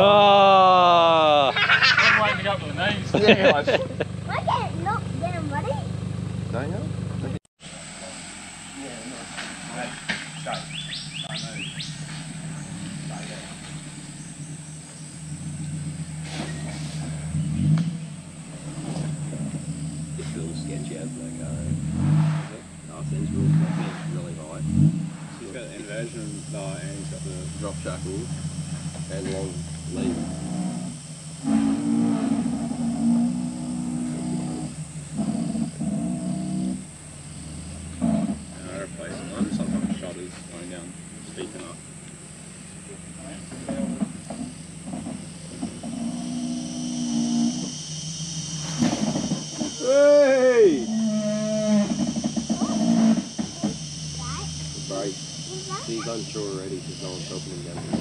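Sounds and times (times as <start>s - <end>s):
engine running and revving: 0.0s - 58.0s.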